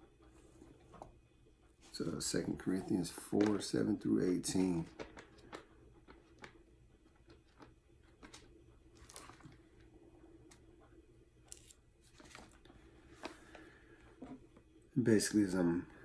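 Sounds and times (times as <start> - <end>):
faint steady hum: 0.0 - 16.0
paper pages rustling: 11.5 - 13.7.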